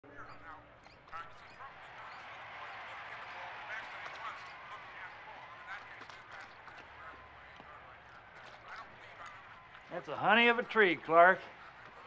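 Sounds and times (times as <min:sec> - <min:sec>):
faint voices talking: 0:00.0 - 0:12.0.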